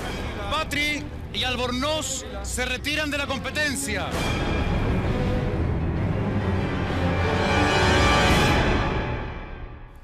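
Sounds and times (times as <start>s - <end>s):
tense ambient music: 0.0s - 10.0s.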